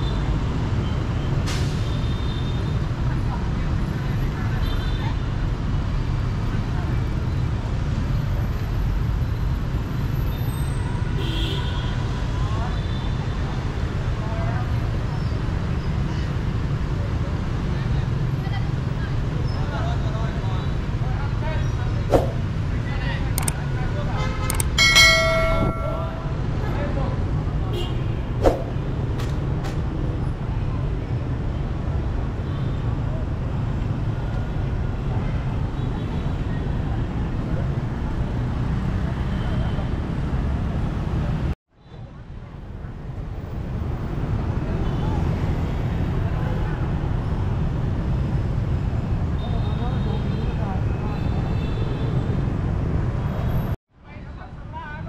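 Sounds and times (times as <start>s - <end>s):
motorbikes and cars rumbling: 0.0s - 55.0s.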